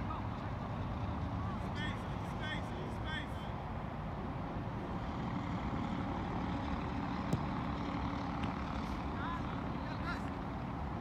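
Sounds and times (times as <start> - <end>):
ball being kicked: 7.3 - 7.6.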